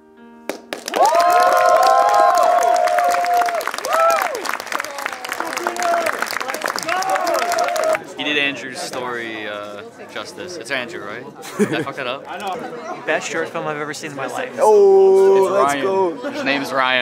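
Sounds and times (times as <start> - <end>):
audience clapping and cheering: 0.5 - 8.1
whoops: 0.9 - 6.1, 6.8 - 8.0.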